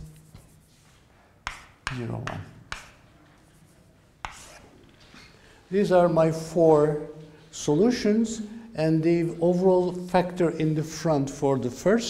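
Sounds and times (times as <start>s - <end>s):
chalk tapping on blackboard: 0.0s - 4.7s
chalk writing: 0.0s - 4.8s.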